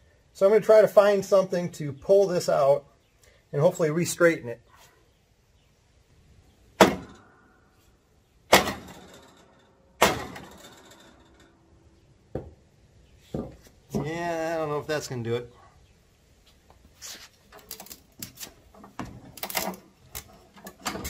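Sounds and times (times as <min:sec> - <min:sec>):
loud metal clanks: 0:08.5 - 0:11.5
soft knocks: 0:12.3 - 0:12.6.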